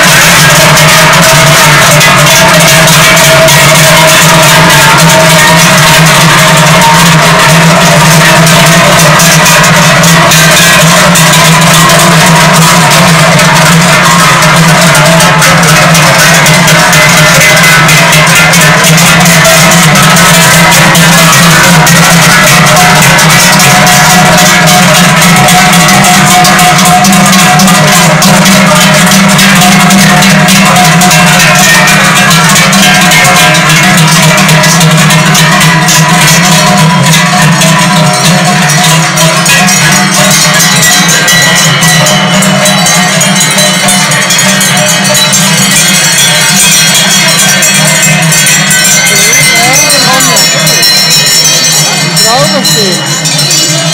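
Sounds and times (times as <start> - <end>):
cowbells clanging: 0.0 - 53.9.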